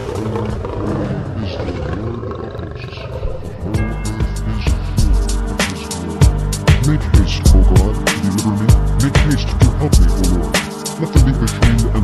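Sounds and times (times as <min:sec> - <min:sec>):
deep roaring animal-like voice: 0:00.0 - 0:05.5
backing music: 0:03.5 - 0:12.0.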